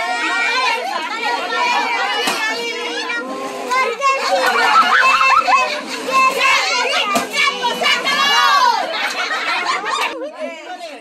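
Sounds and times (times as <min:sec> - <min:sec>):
children calling out and chattering: 0:00.0 - 0:11.0.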